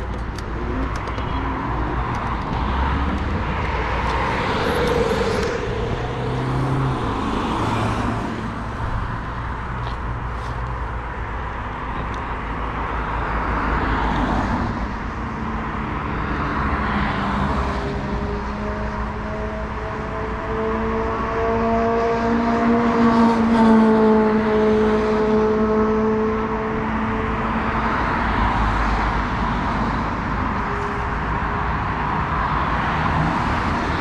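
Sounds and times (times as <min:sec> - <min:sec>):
road traffic passing: 0:00.0 - 0:34.0
vehicle engine hum: 0:00.0 - 0:34.0.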